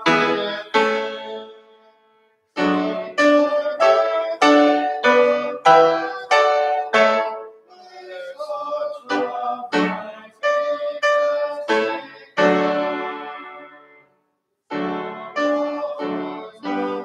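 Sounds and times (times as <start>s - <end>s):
piano playing hymn chords: 0.0s - 1.9s, 2.6s - 7.6s, 8.8s - 14.0s, 14.7s - 17.0s.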